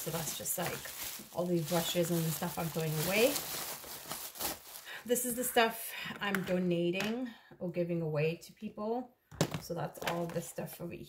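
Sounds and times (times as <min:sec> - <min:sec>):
plastic bag rustling: 0:00.0 - 0:05.5.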